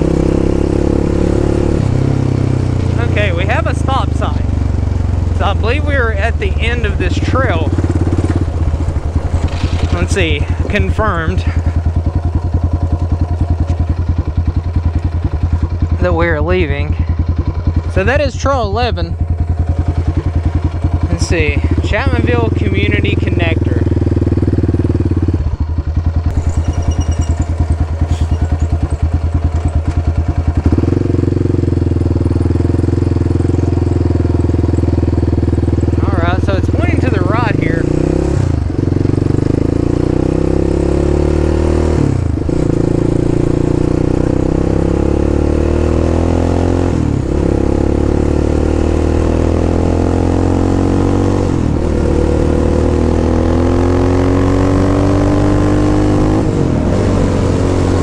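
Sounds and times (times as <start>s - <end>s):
atv engine accelerating: 0.0s - 58.0s.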